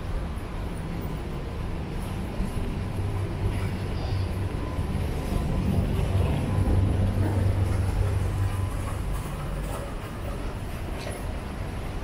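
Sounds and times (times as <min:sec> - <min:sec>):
street low rumble: 0:00.0 - 0:12.0.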